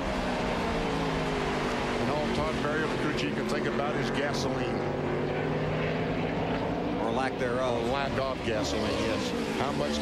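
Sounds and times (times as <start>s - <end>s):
race car engines droning: 0.0s - 10.0s.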